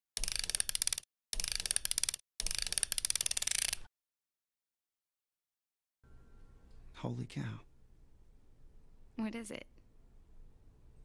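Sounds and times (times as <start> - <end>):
mechanical ratcheting clicks: 0.2 - 3.9.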